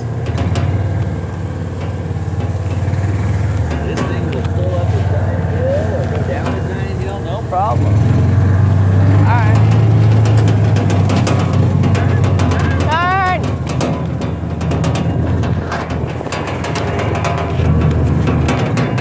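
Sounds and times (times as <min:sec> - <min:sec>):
knocks and rattles: 0:00.0 - 0:19.0
utility vehicle engine drone: 0:00.0 - 0:19.0.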